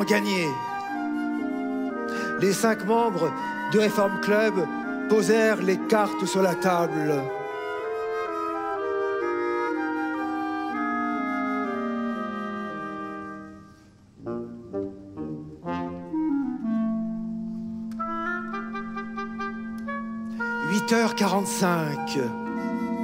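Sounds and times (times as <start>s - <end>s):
orchestra led by woodwinds: 0.0s - 23.0s.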